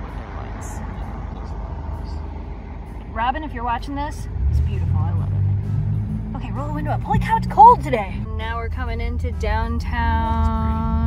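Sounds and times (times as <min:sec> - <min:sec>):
car driving past: 0:00.0 - 0:09.3.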